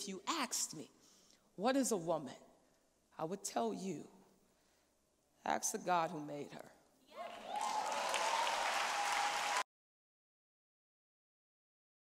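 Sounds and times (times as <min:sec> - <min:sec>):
audience applauding: 0:07.2 - 0:09.7.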